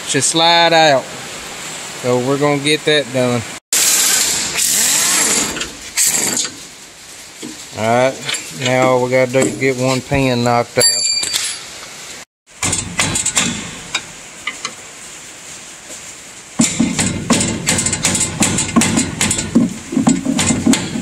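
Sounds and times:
screwdriver knocking on sheet metal: 16.6 - 21.0.

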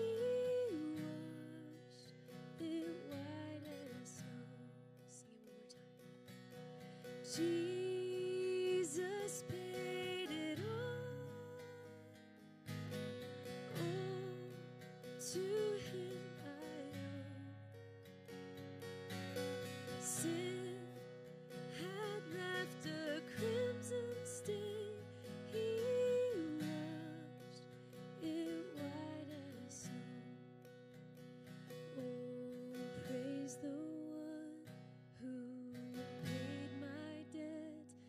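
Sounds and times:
woman singing: 0.0 - 6.0, 7.0 - 12.4, 13.5 - 17.7, 19.8 - 30.4, 31.8 - 38.0
strummed acoustic guitar: 0.0 - 38.0.

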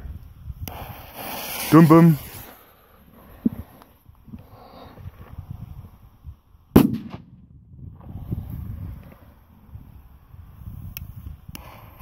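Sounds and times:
wind rumble on microphone: 0.0 - 12.0
firecracker bang: 6.8 - 7.4.

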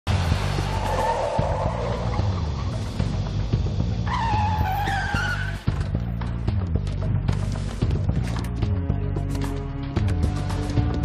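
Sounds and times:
van tyres squealing: 0.1 - 3.0, 4.0 - 5.8
film music with low beat: 0.1 - 11.0.

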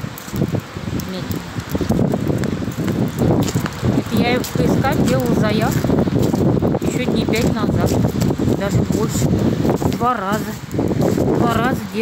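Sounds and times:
rustling on microphone: 0.2 - 12.0
woman talking indistinctly: 1.0 - 1.6, 4.0 - 5.9, 6.8 - 10.7, 11.3 - 12.0.

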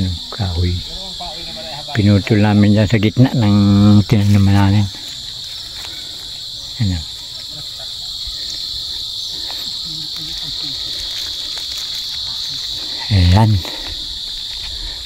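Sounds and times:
high-pitched insect chorus: 0.0 - 15.0.

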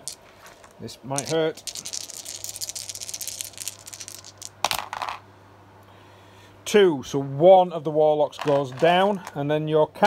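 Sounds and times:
dice clattering onto a board: 0.0 - 5.2, 8.3 - 9.4
dice rattling in a hand: 0.0 - 5.2, 8.3 - 9.4.

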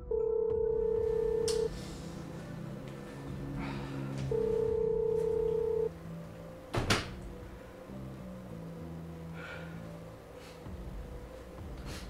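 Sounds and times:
telephone ringback tone: 0.0 - 1.7, 4.3 - 5.9.

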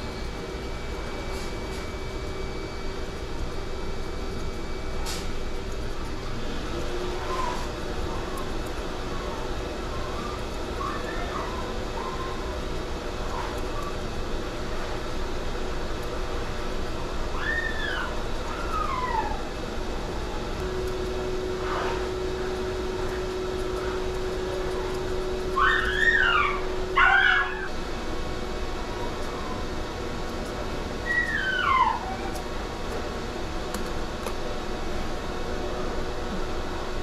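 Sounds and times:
steady background hum: 0.0 - 37.0
small dog whining: 7.1 - 12.6, 17.3 - 19.6, 21.6 - 27.7, 28.9 - 29.8, 31.0 - 32.5.

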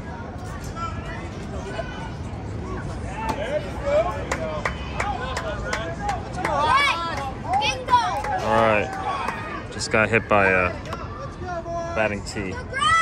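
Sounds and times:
children calling and chattering: 6.4 - 13.0.

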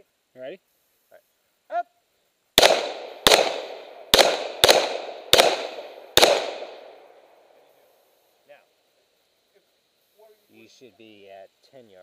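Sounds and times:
pistol shots with echo: 2.6 - 7.2.

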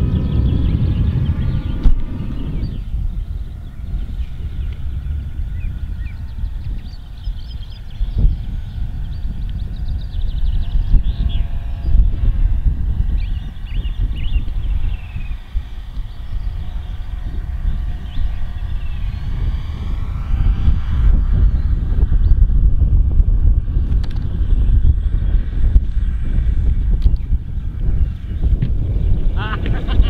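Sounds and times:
model plane motor whine: 0.0 - 30.0
wind buffeting microphone: 0.0 - 30.0.

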